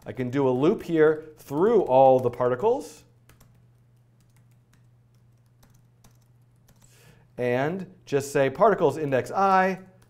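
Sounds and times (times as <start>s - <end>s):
low steady hum: 0.0s - 10.0s
typing on computer keyboard: 3.2s - 6.9s.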